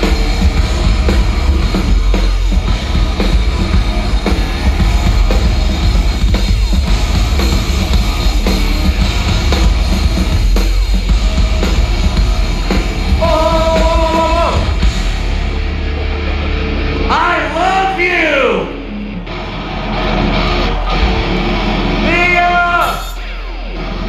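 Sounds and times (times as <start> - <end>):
heavy drums: 0.0 - 24.0
electric guitar: 18.6 - 24.0.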